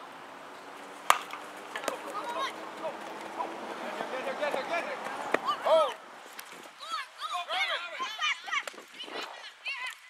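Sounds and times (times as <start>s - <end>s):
baseball bat hitting ball: 1.0s - 2.3s.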